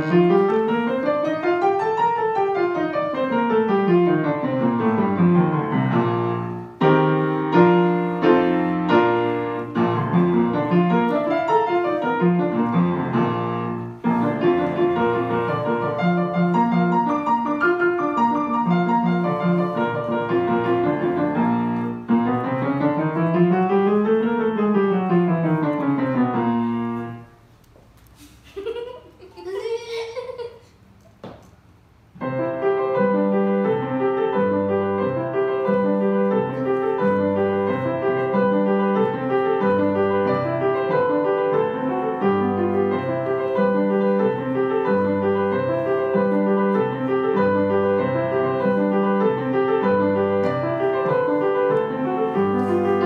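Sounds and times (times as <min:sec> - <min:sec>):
solo grand piano: 0:00.0 - 0:53.0.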